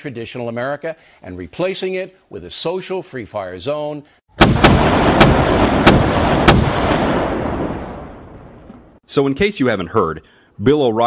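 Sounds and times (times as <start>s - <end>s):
dense rumble: 4.4s - 9.0s
gunshots: 4.4s - 9.0s.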